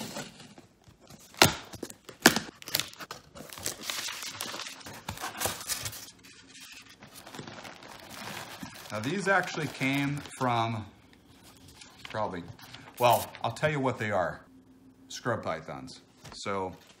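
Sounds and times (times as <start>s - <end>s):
paper packing rustling: 0.0s - 13.6s.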